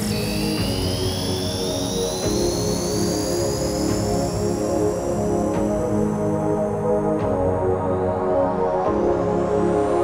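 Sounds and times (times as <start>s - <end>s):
psytrance electronic music: 0.0s - 10.0s.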